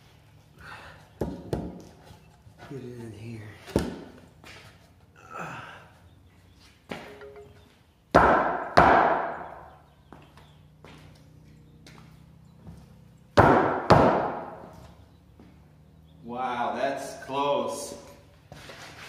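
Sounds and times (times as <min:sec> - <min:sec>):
heavy wooden thuds: 0:13.4 - 0:14.7.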